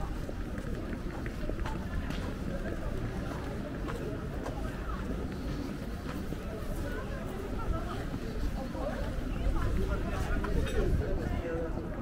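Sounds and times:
passers-by talking: 0:00.0 - 0:12.0.

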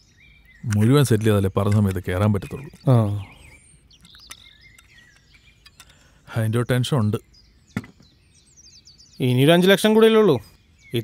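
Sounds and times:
high bird chirps: 0:00.0 - 0:11.0
short knock: 0:07.8 - 0:08.0.

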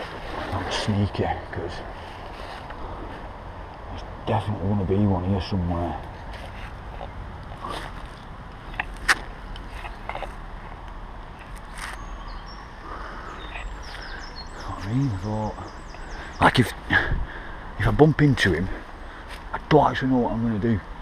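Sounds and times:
footsteps on mulch and leaves: 0:06.0 - 0:12.6
twig snapping: 0:07.0 - 0:12.0
bird high chirps: 0:11.4 - 0:16.8.

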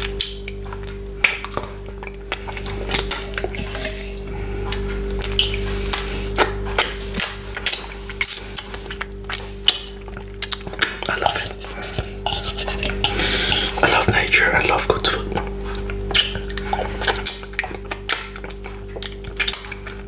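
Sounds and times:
mouth eating sounds: 0:00.0 - 0:20.0.

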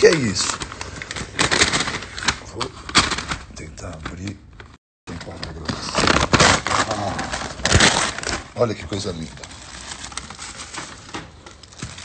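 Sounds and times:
paper bag rustling: 0:00.0 - 0:04.2, 0:05.2 - 0:12.0.

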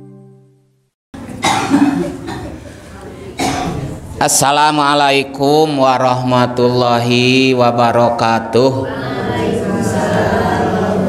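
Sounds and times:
music jingle chord: 0:00.0 - 0:00.8
man coughing and clearing throat: 0:01.4 - 0:02.8, 0:03.4 - 0:04.0.

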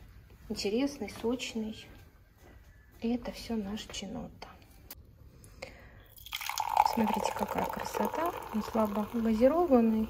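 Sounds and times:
soda pouring and fizzing: 0:06.1 - 0:10.0.

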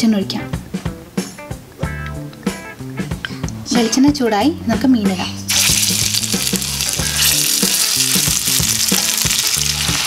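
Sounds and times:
fish frying in hot oil: 0:05.5 - 0:10.0.

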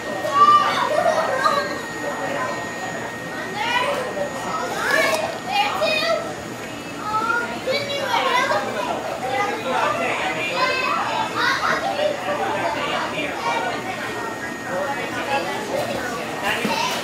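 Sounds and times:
children talking and calling out: 0:00.0 - 0:17.0.

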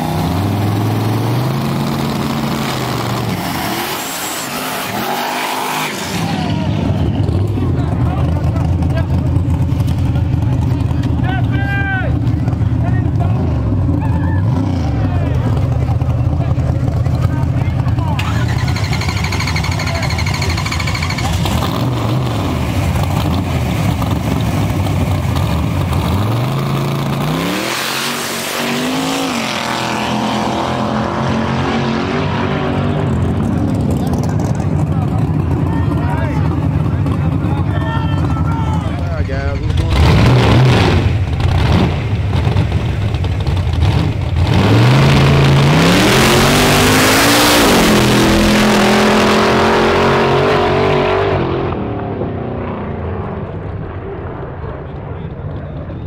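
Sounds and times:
engine revving bursts: 0:00.0 - 0:07.4, 0:18.1 - 0:23.9, 0:25.9 - 0:34.2, 0:39.1 - 0:51.8
race car engines accelerating: 0:00.0 - 0:56.0.

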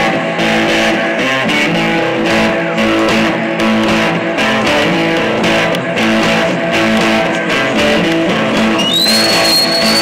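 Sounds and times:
rock band playing: 0:00.0 - 0:10.0
high whistling tone: 0:08.6 - 0:10.0.

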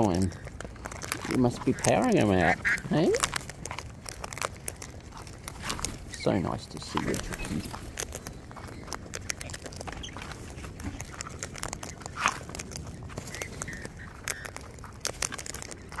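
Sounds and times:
cockatoos cracking seeds: 0:00.0 - 0:16.0.

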